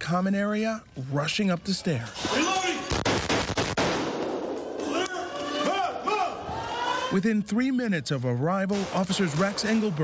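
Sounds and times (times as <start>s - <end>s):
rapid gunshots: 2.8s - 4.4s, 8.7s - 10.0s.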